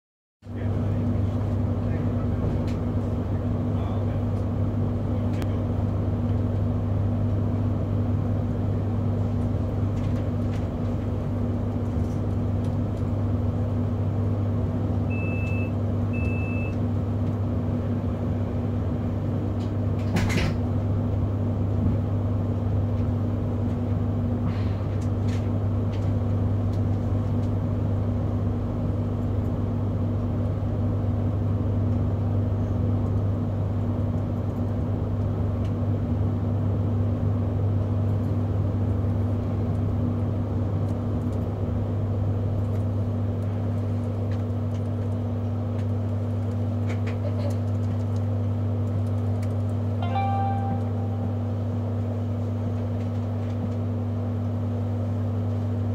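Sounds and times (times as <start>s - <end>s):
train carriage hum: 0.4s - 55.9s
short high beeps: 50.0s - 51.5s.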